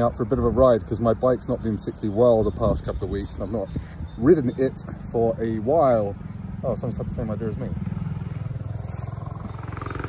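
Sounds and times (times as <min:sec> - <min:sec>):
motorcycle engine passing: 0:05.3 - 0:10.0.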